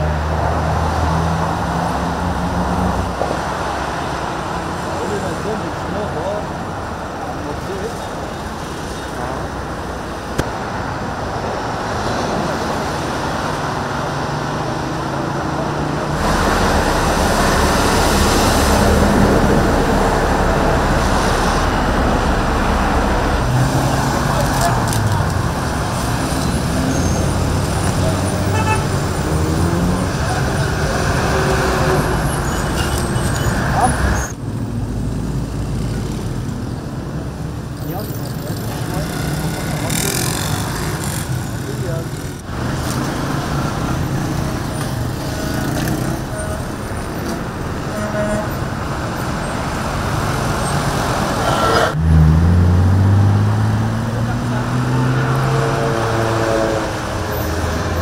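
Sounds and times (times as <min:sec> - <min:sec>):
highway traffic passing: 0:00.0 - 0:58.0.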